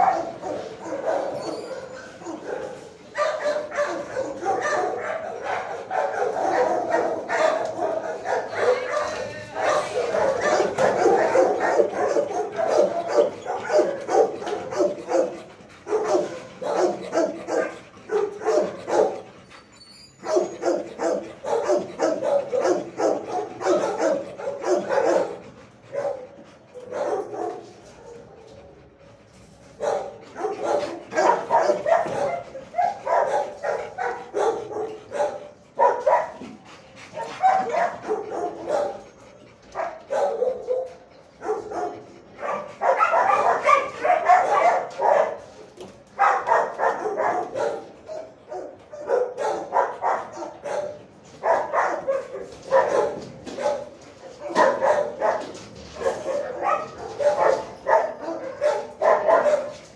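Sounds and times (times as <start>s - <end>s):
dogs barking: 0.0s - 59.9s.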